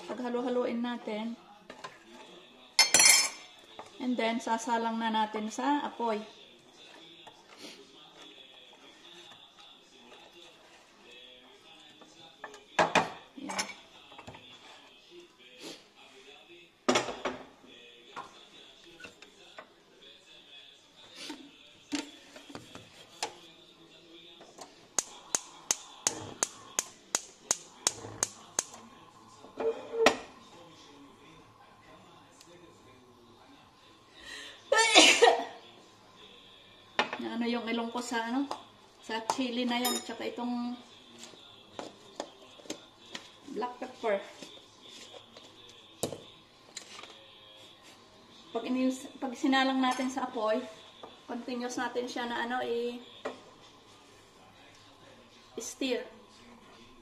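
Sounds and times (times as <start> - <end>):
pot and spoon clinking: 2.8 - 3.4.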